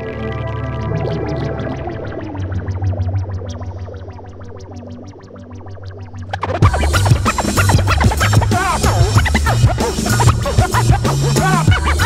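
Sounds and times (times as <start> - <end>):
turntable scratching: 0.5 - 12.0
hip hop beat: 6.3 - 12.0.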